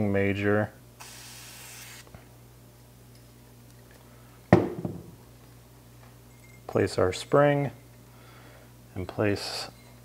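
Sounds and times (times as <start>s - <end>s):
aerosol can hissing: 1.0s - 2.1s.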